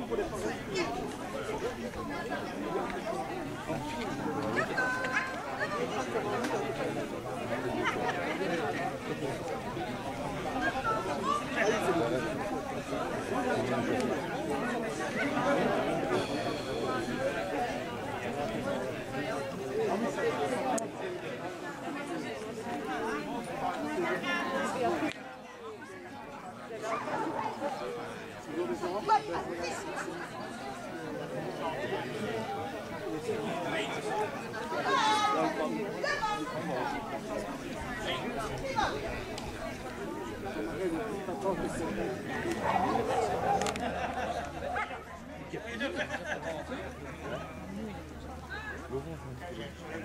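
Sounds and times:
overlapping chatter of voices: 0.0s - 50.0s.

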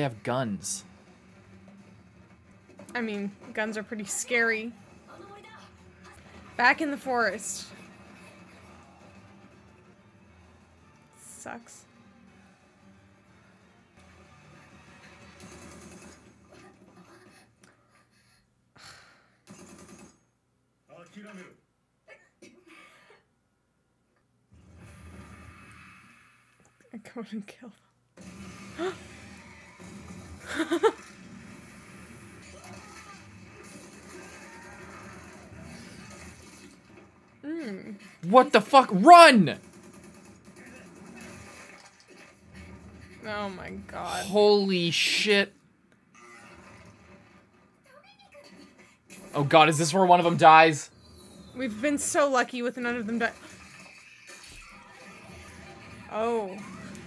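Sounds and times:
faint soundtrack music: 0.0s - 17.6s.

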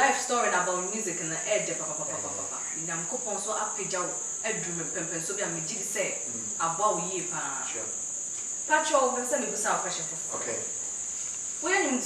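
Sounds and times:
steady high-pitched hiss: 0.0s - 12.0s
person speaking: 2.0s - 2.8s, 6.3s - 7.2s.

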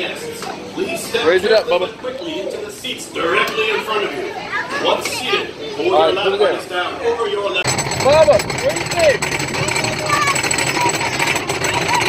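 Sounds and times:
adults and children chattering: 0.0s - 12.0s
roller coaster rattling on track: 7.6s - 12.0s.

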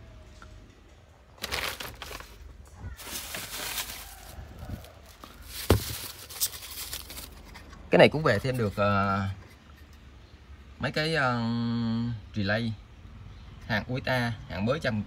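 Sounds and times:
plastic bags and cardboard rustling: 1.3s - 8.7s.

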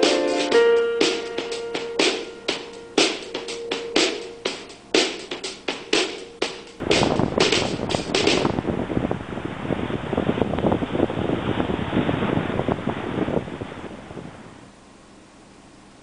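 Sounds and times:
drum-beat music: 0.0s - 8.6s
wind buffeting microphone: 6.8s - 14.6s.

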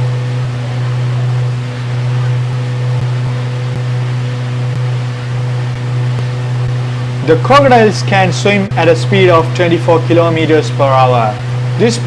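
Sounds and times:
boat engine droning: 0.0s - 12.0s
water rushing along hull: 0.0s - 12.0s.

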